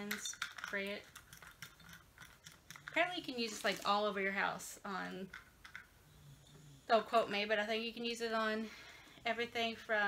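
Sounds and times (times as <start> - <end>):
faint scratching and clicks: 0.0 - 4.4.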